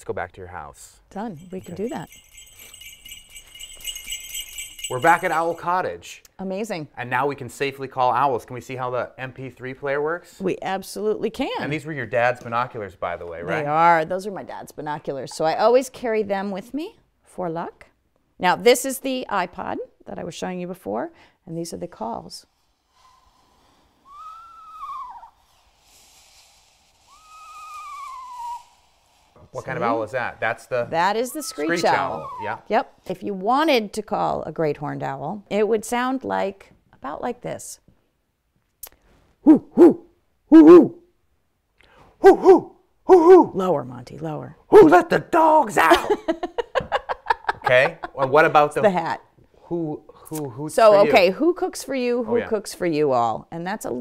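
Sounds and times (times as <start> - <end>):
sleigh bells shaking: 1.2 - 5.8
owl whinny calls: 24.1 - 25.5, 27.1 - 29.1, 31.3 - 32.7, 42.2 - 43.5.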